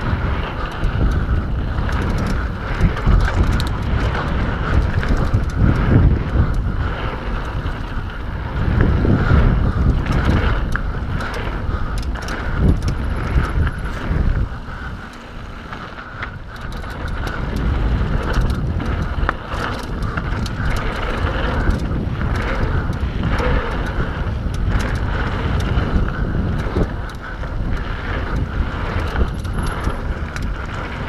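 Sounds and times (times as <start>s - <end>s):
bike rattles and clicks: 0.0s - 31.0s
tyres rumbling over dirt: 0.0s - 31.0s
wind buffeting microphone: 0.0s - 31.0s.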